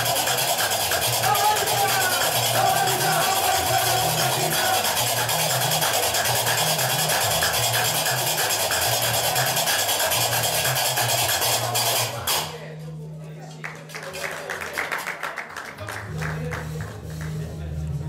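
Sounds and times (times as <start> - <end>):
bass lute playing bass line: 0.0 - 12.8.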